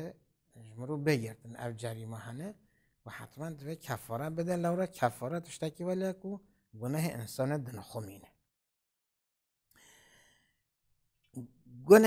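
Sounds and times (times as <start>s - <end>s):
man breathing faintly: 9.7s - 10.8s.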